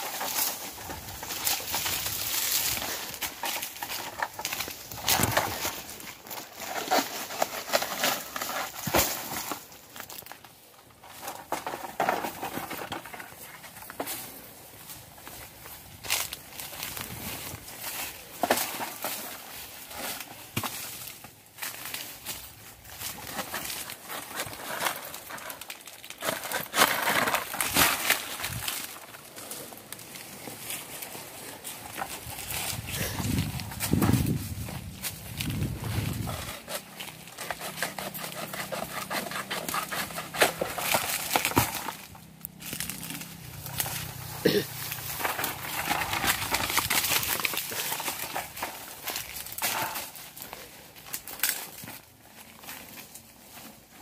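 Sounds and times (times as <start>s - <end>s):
footsteps through dry fronds: 0.0s - 54.0s
palm leaves rustling: 0.0s - 54.0s.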